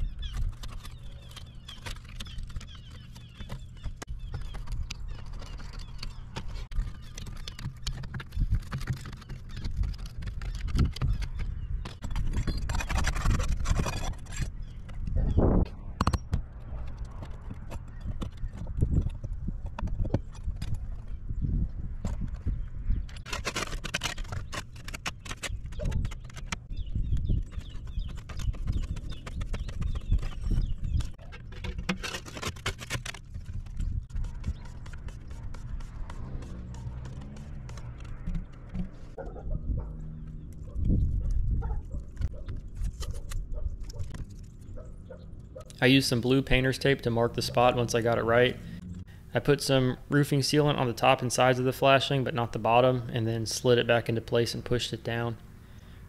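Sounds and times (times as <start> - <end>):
snips cutting shingle: 0.1 - 15.1, 22.1 - 39.2
tools scraping: 0.2 - 15.1, 22.1 - 26.7, 27.4 - 39.3.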